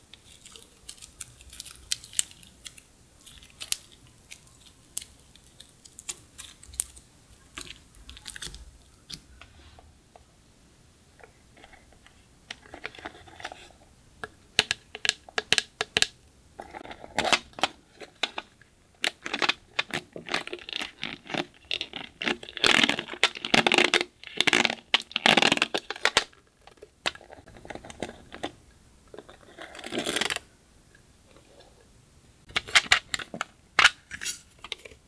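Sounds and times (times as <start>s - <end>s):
hands squishing slime: 0.0s - 9.4s.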